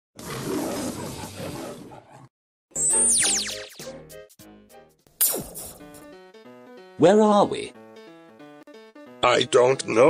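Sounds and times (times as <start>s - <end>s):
lion roaring: 0.2s - 2.3s.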